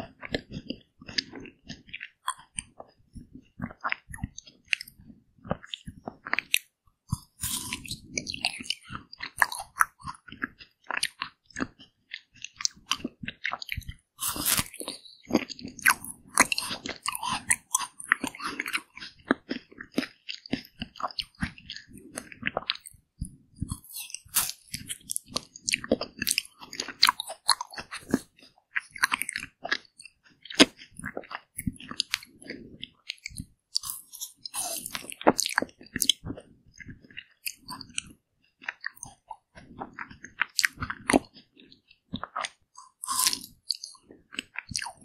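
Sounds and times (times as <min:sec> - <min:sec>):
chewing icy pieces: 0:00.2 - 0:03.0, 0:03.6 - 0:45.0
wet mouth clicks: 0:00.2 - 0:45.0.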